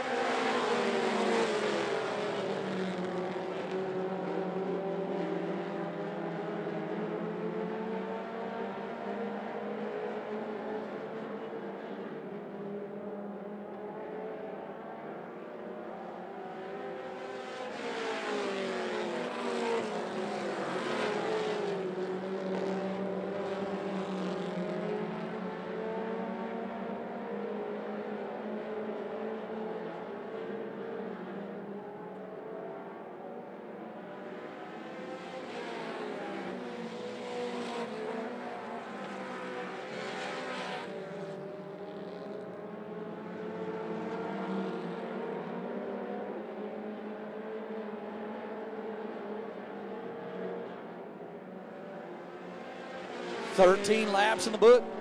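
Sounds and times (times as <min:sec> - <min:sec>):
race car engines: 0:00.0 - 0:55.0.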